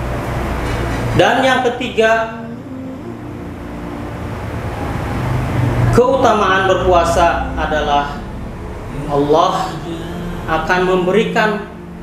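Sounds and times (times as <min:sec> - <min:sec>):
low rumble and hiss: 0:00.0 - 0:12.0.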